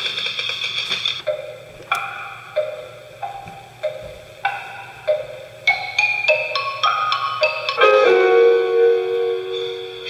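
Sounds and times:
xylophone-like mallet notes: 0:01.3 - 0:08.6.

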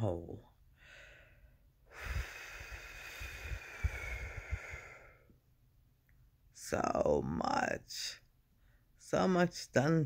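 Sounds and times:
person breathing out: 0:00.8 - 0:05.3.

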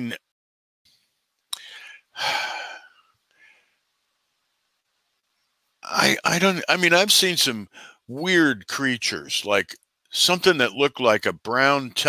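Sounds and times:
man sighing: 0:01.5 - 0:03.0.

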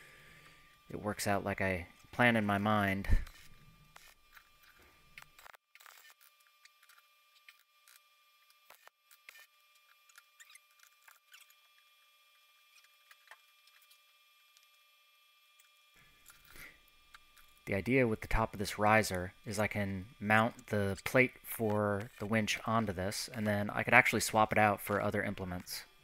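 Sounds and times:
faint steady high hum: 0:00.0 - 0:26.0.

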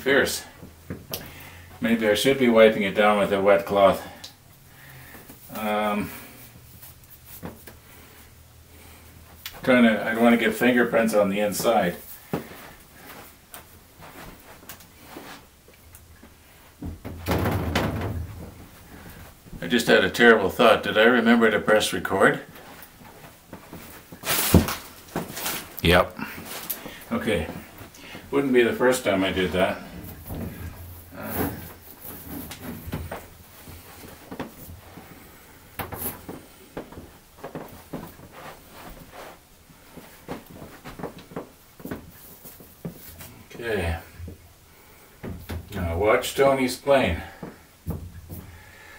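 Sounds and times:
plexiglass sheet rumbling and rubbing: 0:16.9 - 0:19.1, 0:28.6 - 0:35.3
plastic sheet being handled: 0:22.6 - 0:35.0.

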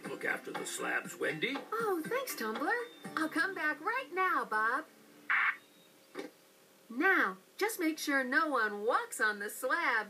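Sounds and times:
walkie-talkie static burst: 0:05.3 - 0:05.6.

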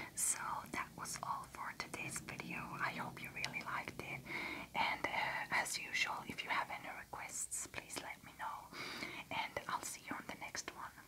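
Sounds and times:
woman whispering: 0:00.0 - 0:11.0.

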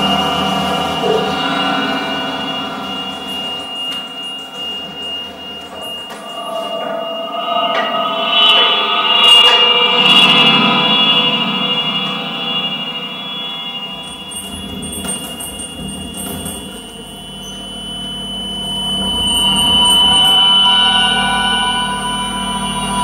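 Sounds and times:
processed double bass drones: 0:00.0 - 0:23.0.

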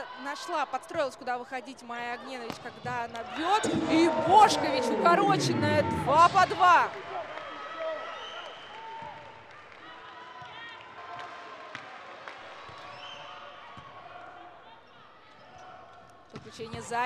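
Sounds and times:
crowd murmur: 0:03.4 - 0:07.2
shouts from the stands: 0:03.4 - 0:11.5.

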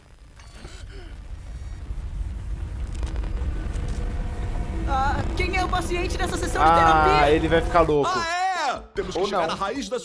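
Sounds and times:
low rumble sound effect: 0:00.0 - 0:08.1.

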